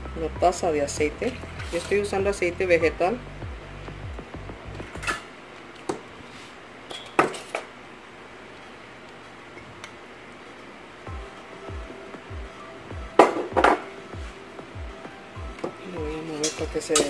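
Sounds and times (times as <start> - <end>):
soft background music: 0.0 - 5.4, 10.5 - 17.0.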